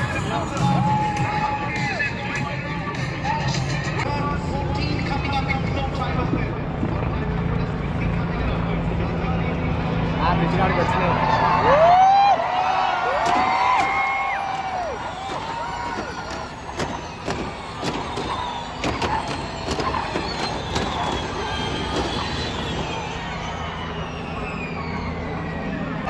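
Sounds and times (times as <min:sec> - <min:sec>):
crowd voices: 0:00.0 - 0:26.0
race cars electric whine: 0:03.5 - 0:26.0.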